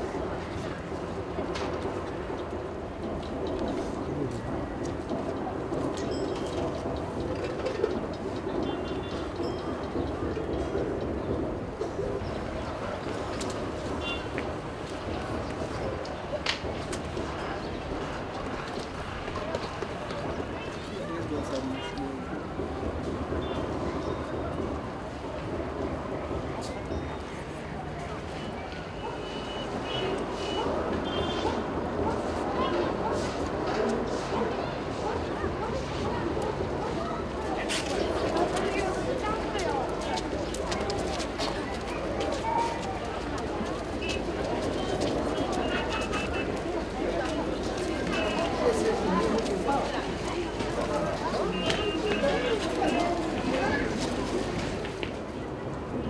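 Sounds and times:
distant indistinct voices: 0.0s - 56.0s
people talking indistinctly: 31.0s - 55.0s.

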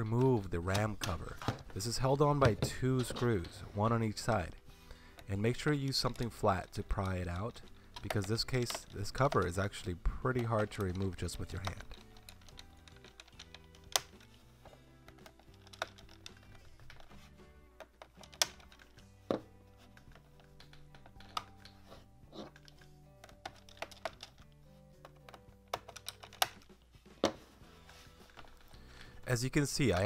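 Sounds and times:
soft background music: 0.0s - 30.0s
fingernails clicking on plastic: 6.0s - 19.1s, 19.8s - 26.8s.

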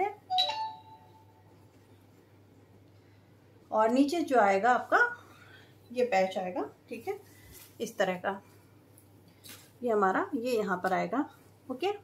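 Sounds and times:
two-note chime: 0.3s - 1.4s.

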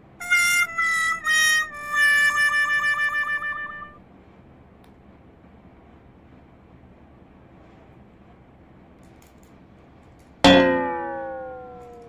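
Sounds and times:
loud metallic clang: 10.4s - 12.0s.

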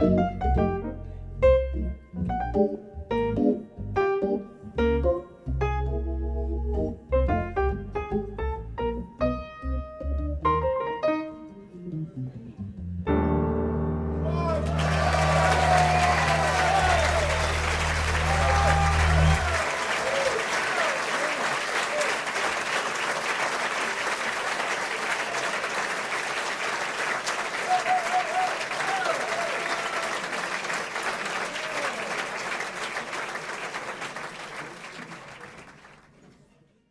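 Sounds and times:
hammond organ chord: 0.0s - 12.1s, 13.0s - 19.8s
audience shouting: 14.2s - 22.1s, 27.6s - 30.2s
audience applause: 14.3s - 36.2s.

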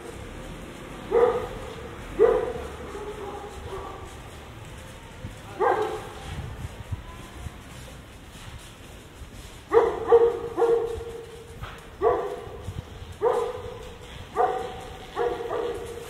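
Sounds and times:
dog barking: 1.1s - 4.2s, 5.5s - 6.2s, 9.7s - 11.4s, 12.0s - 16.0s.

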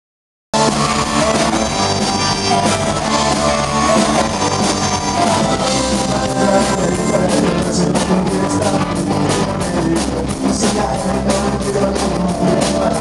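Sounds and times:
rock band playing: 0.6s - 13.0s.

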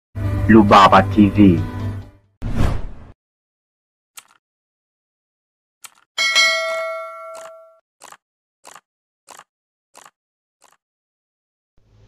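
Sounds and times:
notification bell ding: 6.2s - 7.8s.

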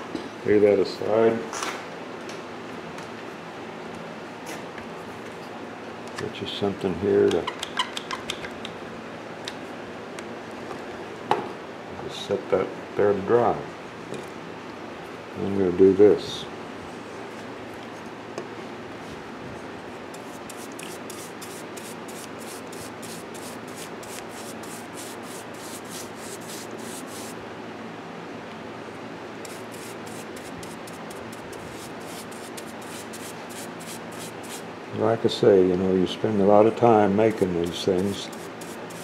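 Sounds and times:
paintbrush strokes: 20.2s - 27.4s, 29.4s - 34.6s, 37.6s - 39.0s.

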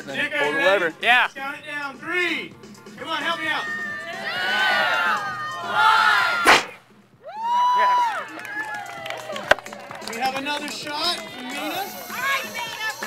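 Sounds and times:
group of people shouting: 3.2s - 9.3s
launcher firing with sharp crack: 6.4s - 6.8s.

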